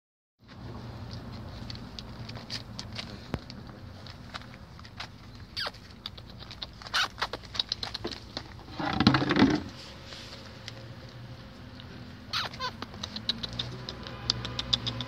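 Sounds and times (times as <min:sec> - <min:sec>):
puppies chewing bread crust: 0:00.8 - 0:08.6, 0:10.3 - 0:15.0.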